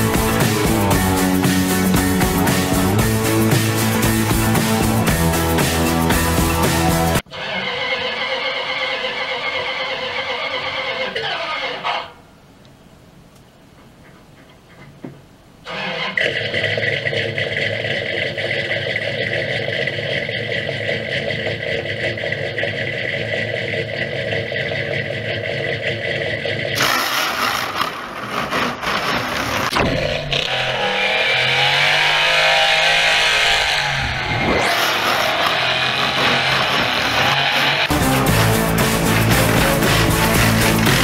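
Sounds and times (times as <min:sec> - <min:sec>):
car engine starting and revving: 0:00.0 - 0:11.8, 0:15.7 - 0:41.0
tyres screeching: 0:00.0 - 0:12.2, 0:15.6 - 0:16.6, 0:26.8 - 0:41.0.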